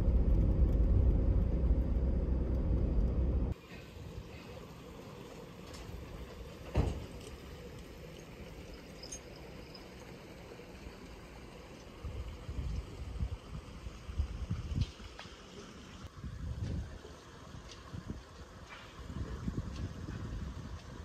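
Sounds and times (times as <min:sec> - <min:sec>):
wind buffeting microphone: 0:12.0 - 0:15.1, 0:16.1 - 0:21.0.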